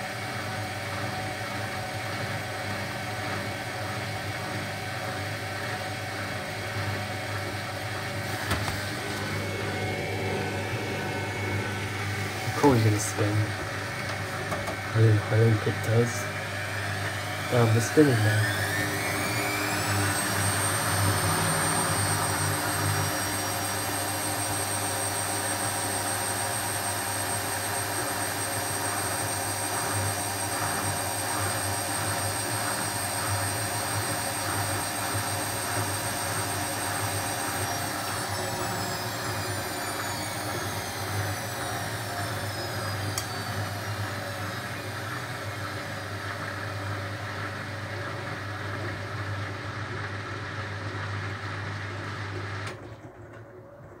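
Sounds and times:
washing machine spinning: 0.0 - 54.0.

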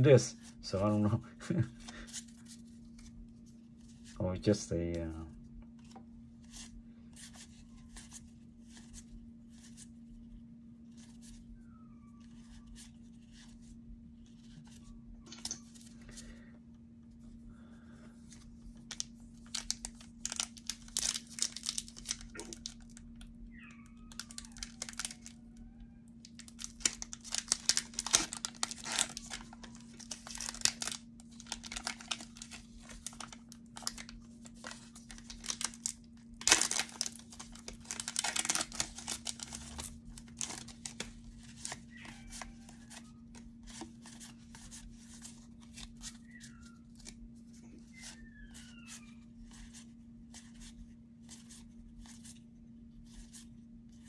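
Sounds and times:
foil wrappers tearing and crinkling: 18.9 - 23.0, 24.1 - 25.4, 26.2 - 46.4.

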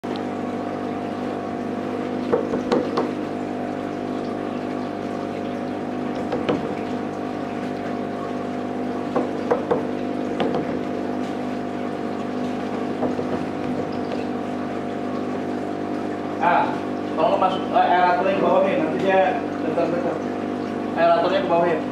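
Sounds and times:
aquarium air pump humming: 0.0 - 21.9
air stone bubbling: 0.2 - 17.8.

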